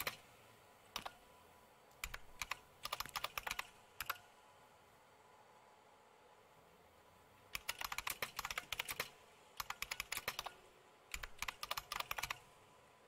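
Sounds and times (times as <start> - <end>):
typing on computer keyboard: 0.0 - 0.2, 1.0 - 1.2, 2.0 - 4.2, 7.5 - 12.4.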